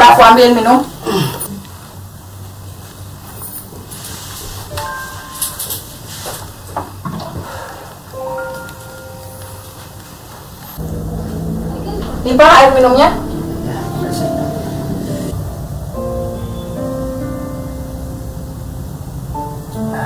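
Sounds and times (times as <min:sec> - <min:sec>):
held music notes: 0:08.2 - 0:20.0
low hum: 0:10.6 - 0:19.5.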